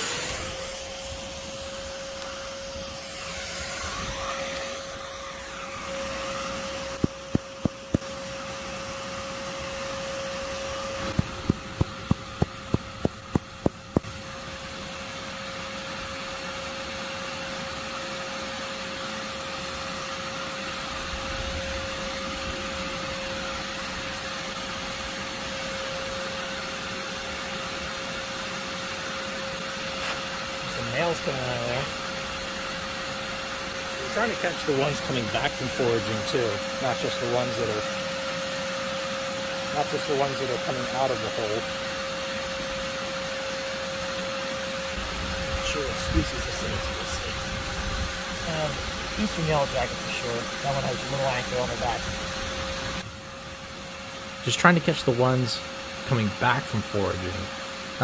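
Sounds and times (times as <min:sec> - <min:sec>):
shop vacuum whining: 0:00.0 - 0:58.0.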